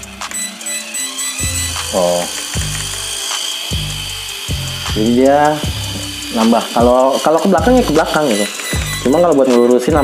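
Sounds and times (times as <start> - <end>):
small electric motor spinning: 0.0 - 10.0.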